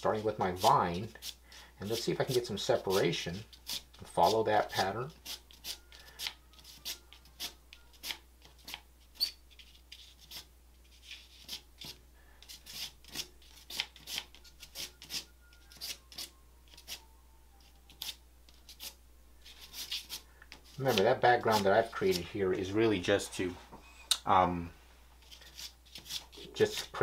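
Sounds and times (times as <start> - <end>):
charcoal scratching on paper: 0.2 - 17.0, 17.6 - 22.3, 25.2 - 27.0.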